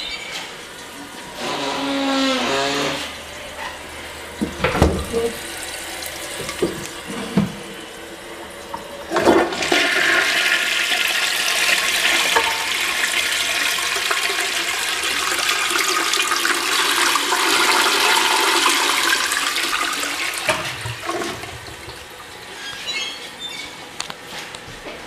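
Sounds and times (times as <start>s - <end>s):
toilet flushing: 0.0s - 23.3s.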